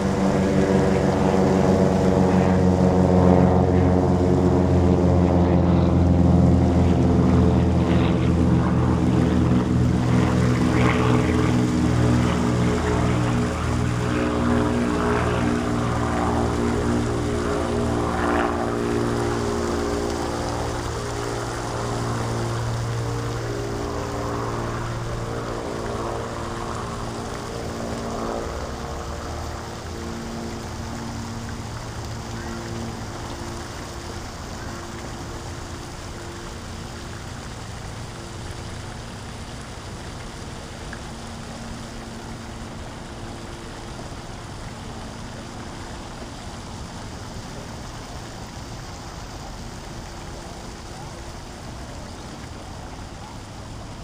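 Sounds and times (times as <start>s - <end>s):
distant engine drone: 0.0s - 54.0s
water hissing: 0.0s - 54.0s.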